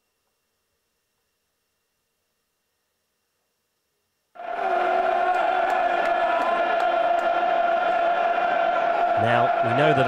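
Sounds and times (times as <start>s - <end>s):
crowd chanting: 4.4s - 10.0s
stadium crowd noise: 4.4s - 10.0s.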